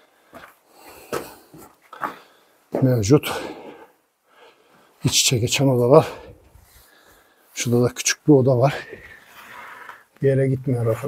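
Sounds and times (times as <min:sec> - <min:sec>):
man breathing hard: 0:00.1 - 0:02.6, 0:06.1 - 0:07.5, 0:08.8 - 0:10.1.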